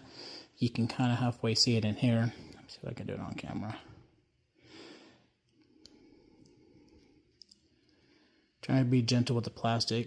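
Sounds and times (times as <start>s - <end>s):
soft breath out: 4.5s - 8.6s.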